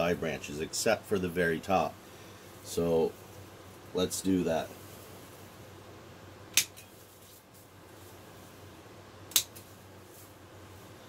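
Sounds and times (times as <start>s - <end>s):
pruning snips cutting stems: 9.3s - 9.8s.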